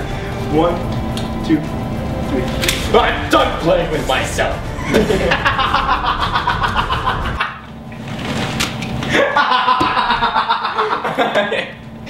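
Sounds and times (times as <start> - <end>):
low rumble: 0.0 - 8.6
young men laughing: 4.7 - 7.7, 9.0 - 11.9.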